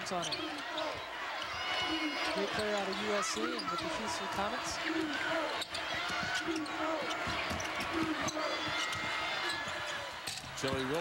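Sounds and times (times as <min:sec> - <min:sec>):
arena crowd noise and voices: 0:00.0 - 0:11.0
basketball bouncing on hardwood: 0:05.8 - 0:09.8.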